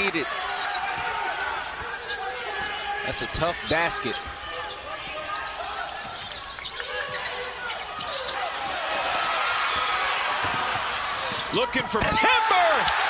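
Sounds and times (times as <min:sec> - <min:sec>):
arena crowd hum: 0:00.0 - 0:13.0.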